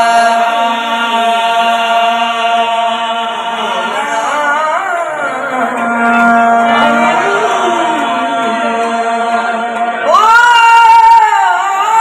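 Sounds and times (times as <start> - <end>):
harmonium chords: 0.0 - 10.1
male voices singing: 0.0 - 12.0
tabla drumming: 4.6 - 11.4.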